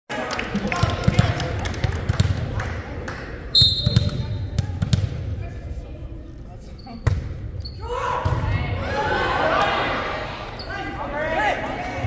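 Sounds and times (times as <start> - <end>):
voices echoing in gym: 0.1 - 12.0
referee whistle: 3.5 - 4.2
volleyball bouncing on gym floor: 3.7 - 5.3.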